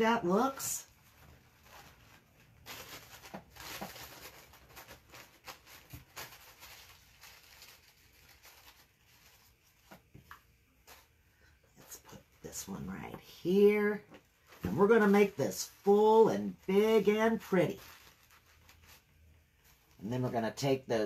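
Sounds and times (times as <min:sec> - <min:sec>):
paper rustling: 0:00.3 - 0:12.2, 0:13.7 - 0:20.0.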